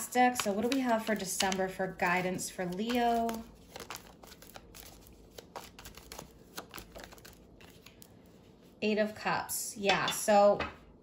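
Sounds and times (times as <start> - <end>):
cards being shuffled: 0.3 - 8.4.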